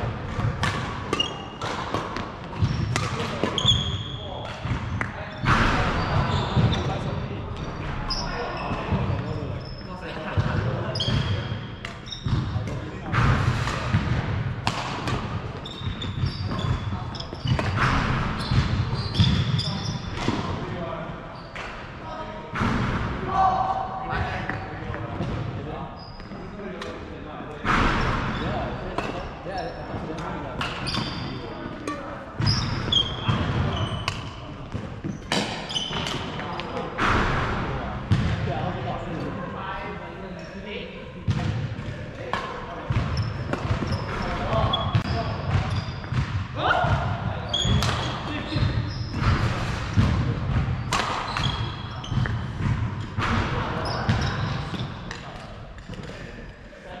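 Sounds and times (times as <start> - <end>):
shoe squeaks: 1.1 - 1.6, 2.5 - 10.1, 10.9 - 12.6, 15.6 - 20.2, 21.3 - 21.6, 25.9 - 26.5, 27.9 - 36.8, 43.1 - 46.2, 47.4 - 49.3, 50.8 - 52.5, 53.8 - 55.0.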